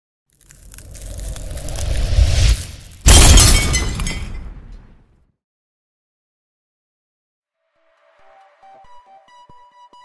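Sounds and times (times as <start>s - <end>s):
low swell rising to a boom: 0.8s - 3.0s
glass shattering: 2.9s - 4.9s.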